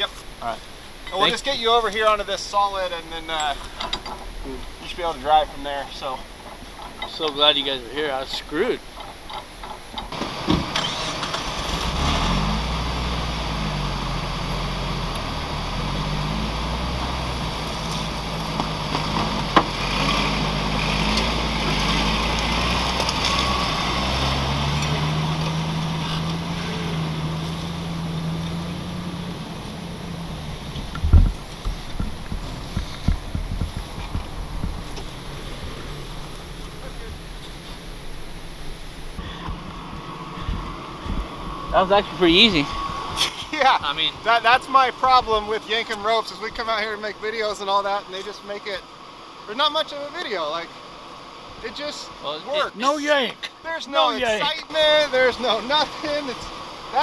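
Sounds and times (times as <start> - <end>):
engines running under load: 3.2 - 49.5.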